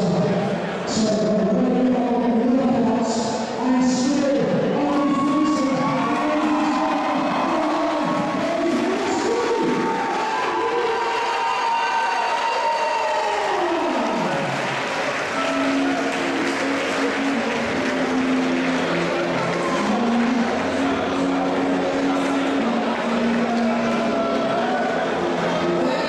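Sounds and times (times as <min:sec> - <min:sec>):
music playing: 0:00.0 - 0:26.0
crowd applause and cheering: 0:04.6 - 0:26.0.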